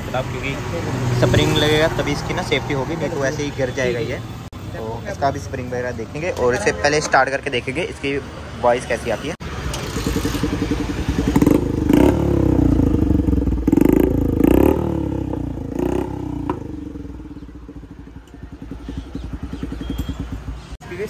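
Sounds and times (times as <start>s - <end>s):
motorcycle engine revving: 0.0s - 3.5s, 9.4s - 20.8s
motorcycle engine idling: 9.5s - 21.0s.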